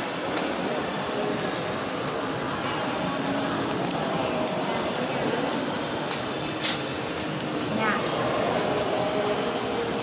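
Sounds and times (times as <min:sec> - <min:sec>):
mall lobby rushing noise: 0:00.0 - 0:10.0.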